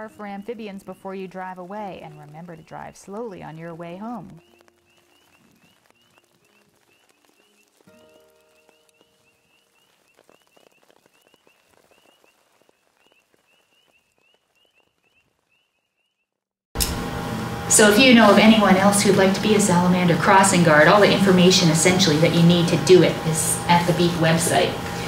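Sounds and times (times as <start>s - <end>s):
frogs peeping: 0.0s - 16.3s.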